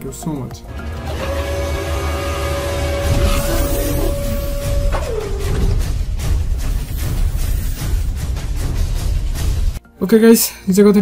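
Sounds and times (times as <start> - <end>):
deep rumble: 0.7 - 9.1
steady held tone: 0.8 - 5.9.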